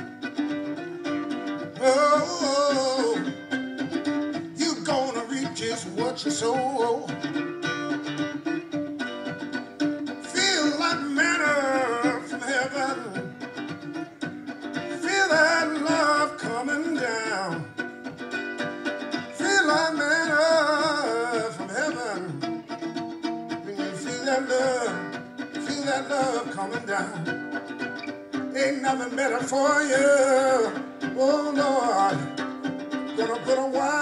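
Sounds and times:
mandolin strumming: 0.0 - 34.0.

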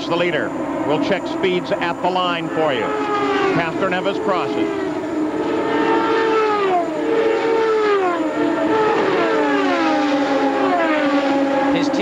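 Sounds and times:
race cars passing at full speed: 0.0 - 12.0.

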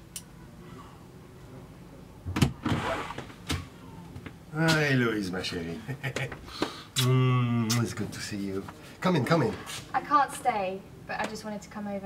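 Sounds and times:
door swinging swish: 2.4 - 3.4.

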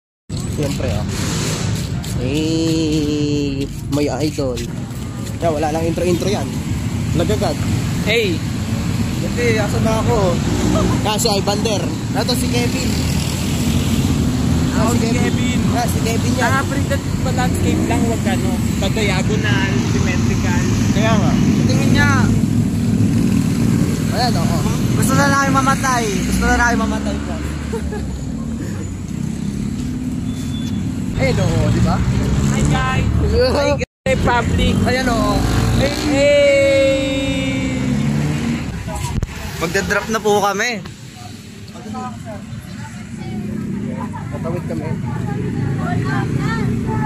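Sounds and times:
street traffic rumble: 0.3 - 47.0
people talking: 2.0 - 6.5, 31.2 - 38.0, 38.7 - 47.0.

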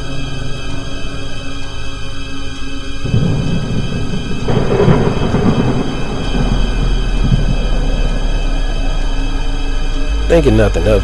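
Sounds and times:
low background music: 0.0 - 11.0
thunder rumbling: 0.0 - 11.0.

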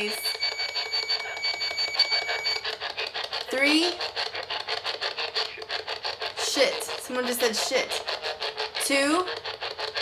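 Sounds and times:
high pulsing beep: 0.0 - 2.7
chopping radio static: 0.0 - 10.0.

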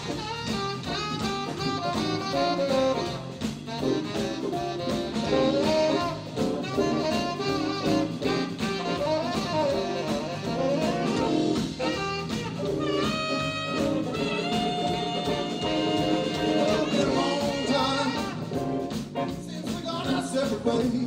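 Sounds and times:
tenor saxophone melody: 0.0 - 19.3
drum kit: 0.0 - 21.0
electric guitar: 0.0 - 21.0
electric keyboard: 0.0 - 21.0.

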